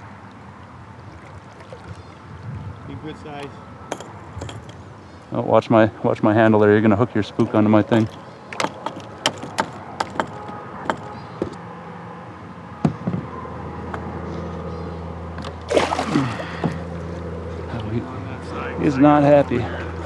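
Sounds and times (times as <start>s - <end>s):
fish splashing in water: 0.3s - 2.4s, 15.6s - 16.8s.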